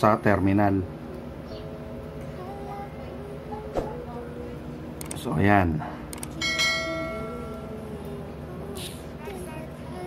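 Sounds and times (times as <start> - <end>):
metal object ringing: 6.4 - 7.6.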